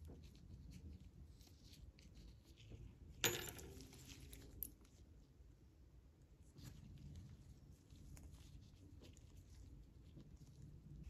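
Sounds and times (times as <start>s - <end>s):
metal part clinking on wood: 3.2s - 4.0s.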